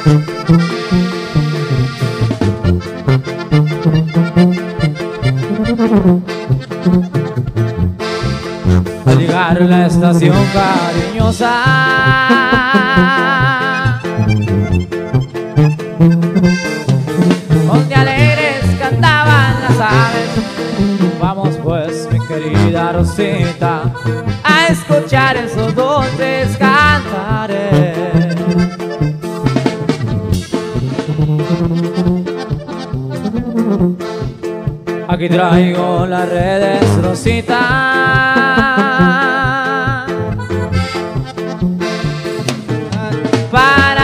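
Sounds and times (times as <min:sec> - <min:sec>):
button accordion playing: 0:00.0 - 0:44.0
lead melody: 0:00.0 - 0:44.0
pulsing bass line: 0:00.0 - 0:44.0
steady drum beat: 0:16.4 - 0:22.0, 0:28.2 - 0:34.8, 0:40.4 - 0:44.0.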